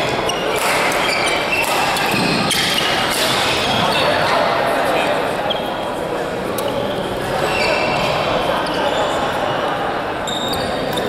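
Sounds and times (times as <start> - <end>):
shoes squeaking on floor: 0.0 - 4.4, 6.6 - 11.0
sports hall din: 0.0 - 11.0
racquets striking shuttlecock: 0.4 - 3.6.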